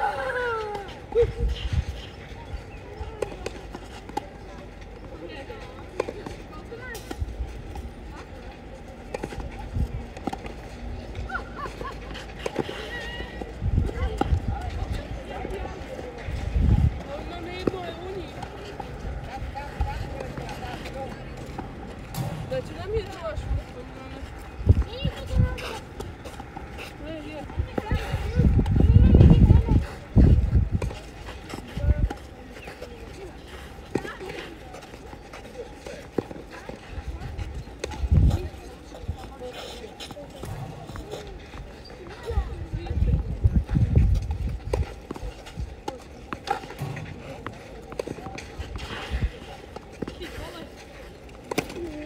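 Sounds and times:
distant voices: 0:00.0 - 0:52.0
tennis ball bouncing on clay: 0:08.6 - 0:10.9, 0:12.0 - 0:28.9, 0:40.0 - 0:42.3, 0:43.1 - 0:52.0
racket striking ball: 0:22.0 - 0:23.2, 0:45.8 - 0:48.8.

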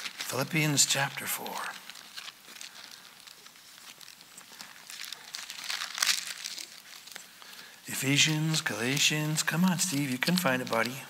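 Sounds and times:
thin pages rustling: 0:00.0 - 0:11.0.

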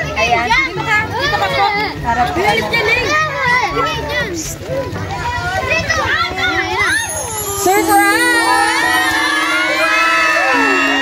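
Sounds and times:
women and children cheering: 0:06.7 - 0:11.0.

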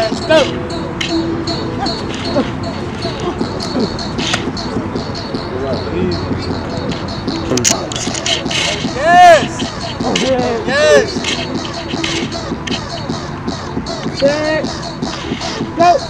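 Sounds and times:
busy background noise: 0:00.0 - 0:16.0
people's voices: 0:00.0 - 0:16.0.

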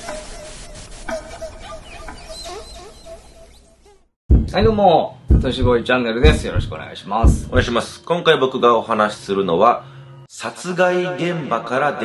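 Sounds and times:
birds clucking: 0:00.8 - 0:03.8.

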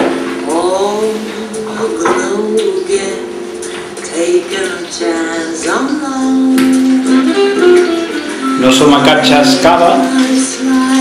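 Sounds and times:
jazz from a portable radio: 0:00.0 - 0:11.0.

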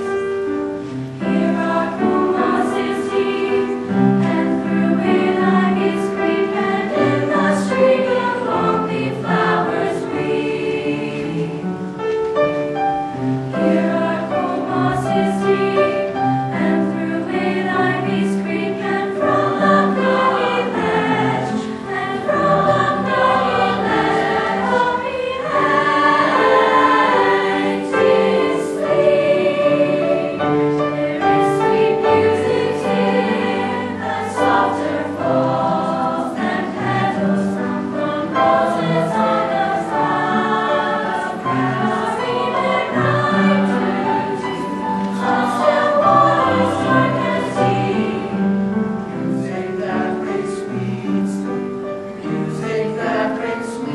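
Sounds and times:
youth choir singing: 0:00.8 - 0:12.0, 0:13.1 - 0:53.9.

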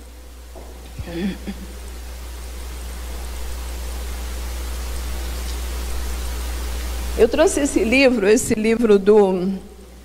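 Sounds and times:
low electrical hum: 0:00.0 - 0:10.0
steady hiss: 0:00.0 - 0:10.0.

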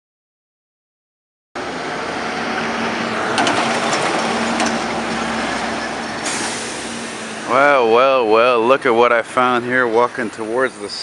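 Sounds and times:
city street traffic: 0:01.6 - 0:11.0
vehicle engine humming: 0:01.6 - 0:11.0
man's voice: 0:07.4 - 0:11.0.

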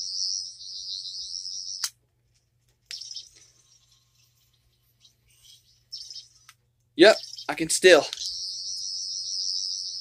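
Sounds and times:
toy high electronic warble: 0:08.2 - 0:10.0.

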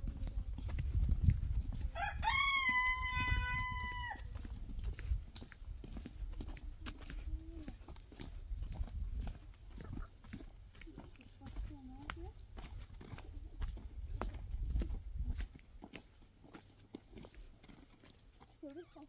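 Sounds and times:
low thumps and rumble: 0:00.0 - 0:01.9
rooster crowing: 0:02.0 - 0:04.3.

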